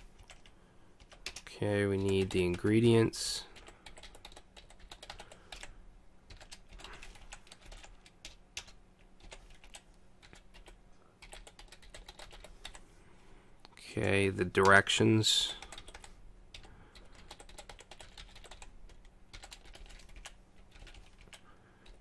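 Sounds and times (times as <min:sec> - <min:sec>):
computer keyboard typing: 0:00.0 - 0:12.8, 0:15.4 - 0:22.0.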